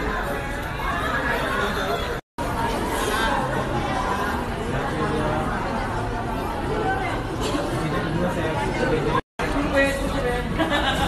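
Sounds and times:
people chattering: 0:00.0 - 0:11.0.

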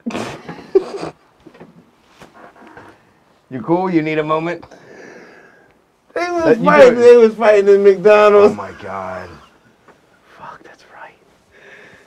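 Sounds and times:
men laughing breathily: 0:00.1 - 0:01.2.

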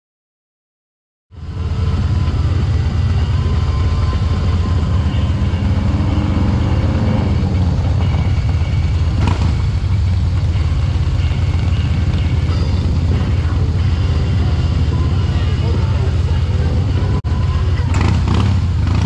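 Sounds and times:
wind and road noise rumble: 0:01.4 - 0:19.0.

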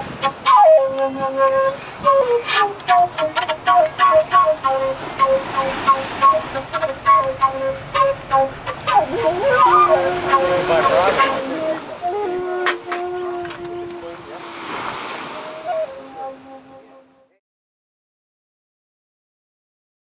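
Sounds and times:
piping melody with light percussion: 0:00.0 - 0:17.4.

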